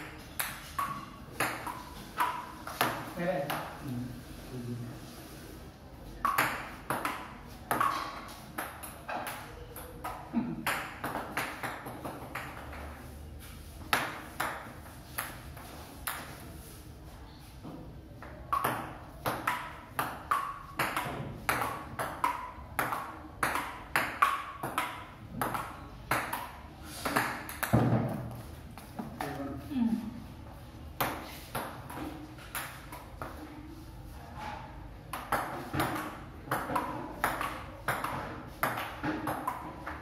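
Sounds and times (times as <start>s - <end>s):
table tennis ball hitting bats: 0.0s - 3.8s, 6.2s - 13.0s, 13.8s - 16.5s, 18.2s - 29.4s, 30.9s - 33.5s, 34.6s - 40.0s.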